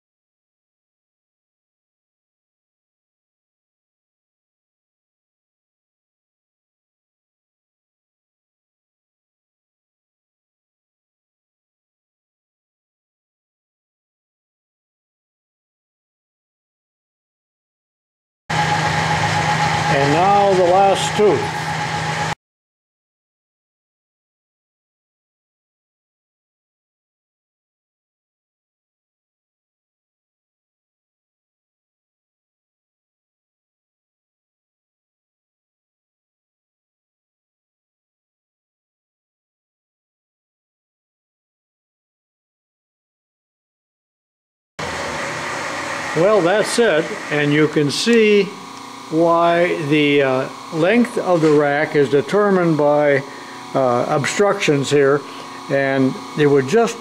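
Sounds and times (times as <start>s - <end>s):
milling machine humming and whining: 18.5s - 22.4s, 44.8s - 57.0s.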